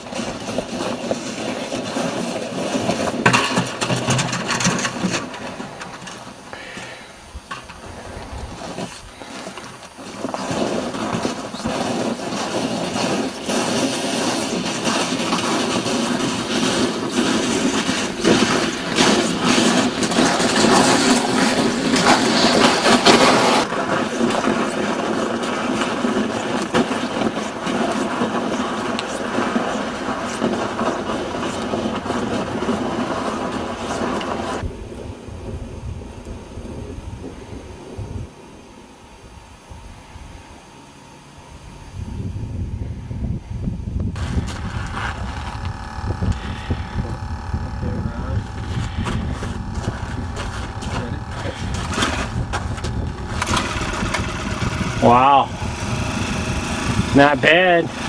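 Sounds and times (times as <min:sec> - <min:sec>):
ice auger two-stroke engine: 0:00.0 - 0:34.7, 0:44.2 - 0:58.0
loud dense steady tones: 0:10.9 - 0:58.0.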